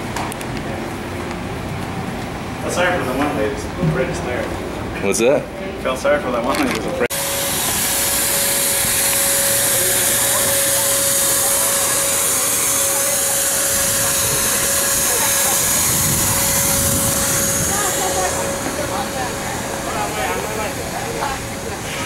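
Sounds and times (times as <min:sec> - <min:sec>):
loud steady hiss: 0:07.1 - 0:22.0
steady high tone: 0:07.1 - 0:22.0.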